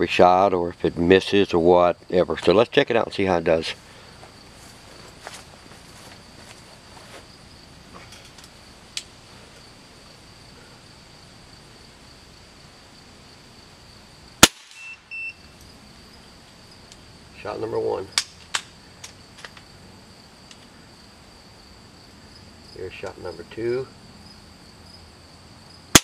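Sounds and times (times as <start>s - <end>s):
high insect drone: 0.0s - 26.0s
air rifle shot: 14.4s - 14.9s.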